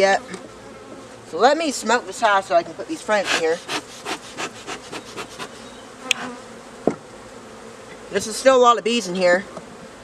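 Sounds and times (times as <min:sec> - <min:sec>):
bees buzzing: 0:00.0 - 0:10.0
smoker bellows puffing: 0:03.2 - 0:06.4.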